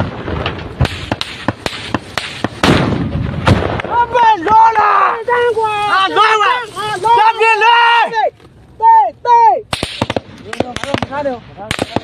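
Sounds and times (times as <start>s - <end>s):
sharp gunshots close by: 0.0s - 4.1s, 9.7s - 12.0s
man shouting: 3.9s - 9.7s.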